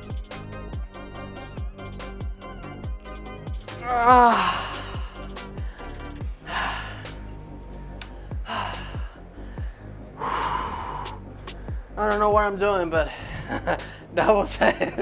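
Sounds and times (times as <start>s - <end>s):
background music with beat: 0.0s - 15.0s
man groaning: 3.7s - 5.3s
heavy breathy exhales: 4.4s - 7.4s, 8.1s - 12.0s.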